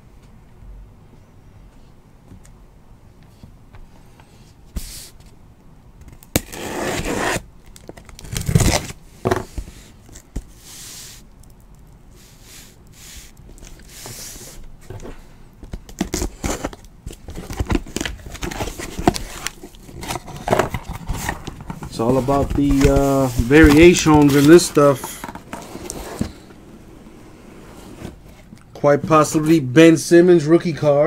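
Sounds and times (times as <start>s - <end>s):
cardboard tearing and rustling: 6.3s - 10.3s, 15.8s - 26.4s.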